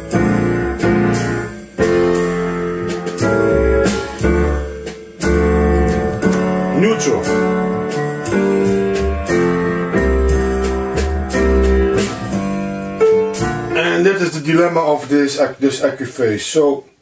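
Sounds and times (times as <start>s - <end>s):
pulsing bass: 0.0s - 13.8s.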